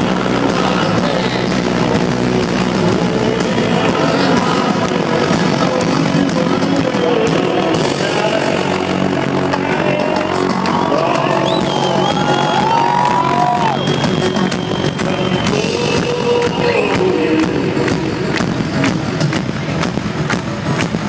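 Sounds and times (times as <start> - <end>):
live electronic rock band: 0.0 - 21.0
crowd cheering: 9.4 - 20.9.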